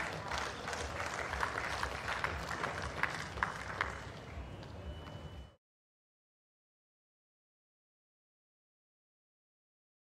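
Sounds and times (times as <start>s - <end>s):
crowd applauding: 0.0s - 5.3s.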